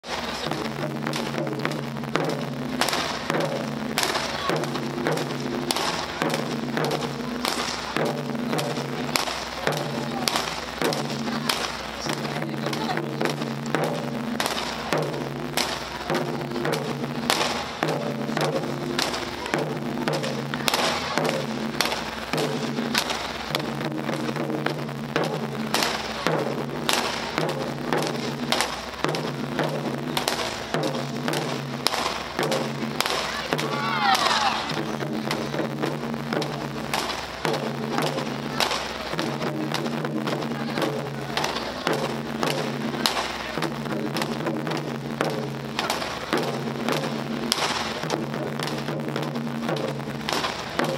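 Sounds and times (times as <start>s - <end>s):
taiko drums beating: 0.0s - 50.9s.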